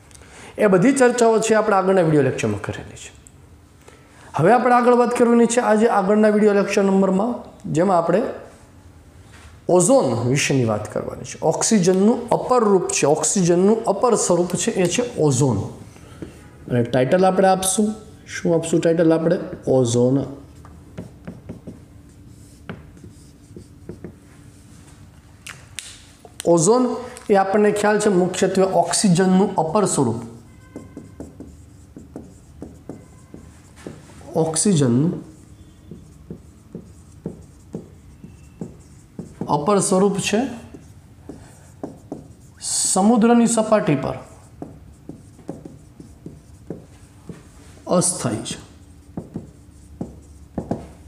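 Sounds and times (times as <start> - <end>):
faint steady hum: 5.5 - 51.0
marker writing on a whiteboard: 11.5 - 24.9, 26.2 - 51.0.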